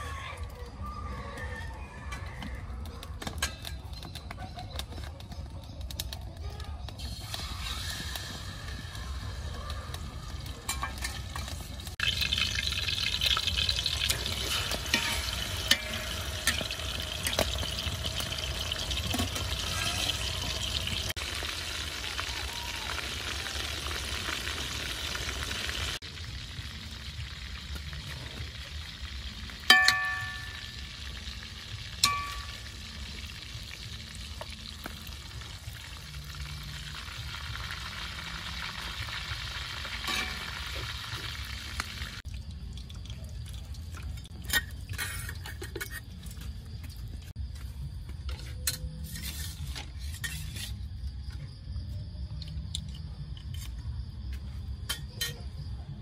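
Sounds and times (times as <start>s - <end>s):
fish sizzling in hot oil: 6.5s - 47.1s
metal spatula striking wok: 14.4s - 17.5s, 29.7s - 30.7s, 32.0s - 32.6s.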